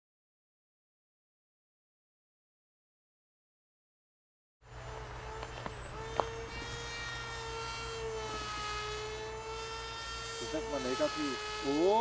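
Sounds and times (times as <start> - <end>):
electric motor whine: 4.6 - 12.0.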